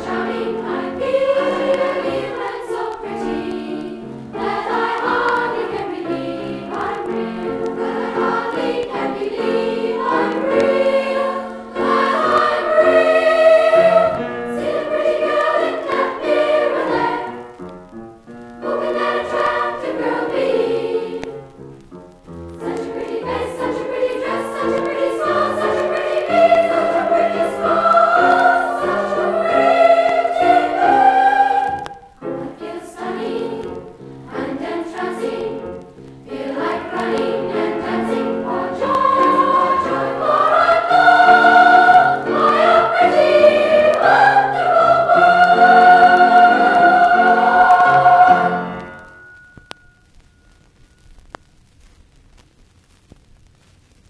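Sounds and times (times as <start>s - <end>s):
choir singing: 0.0s - 17.6s, 18.6s - 21.5s, 22.5s - 49.3s.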